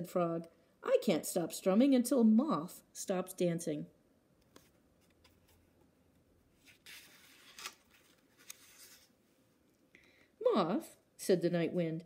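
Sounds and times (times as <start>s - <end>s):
paper page turning: 6.6s - 9.1s
paper rubbing: 6.6s - 9.1s.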